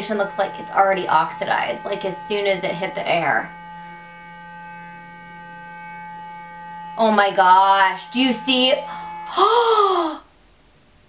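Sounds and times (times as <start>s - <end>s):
electric face brush humming: 0.0s - 10.4s.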